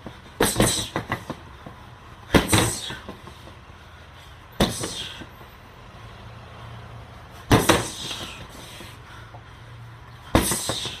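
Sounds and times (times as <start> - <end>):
gloved punches on heavy bag: 0.0 - 1.4, 2.3 - 3.3, 4.6 - 5.2, 7.5 - 8.4, 10.3 - 11.0.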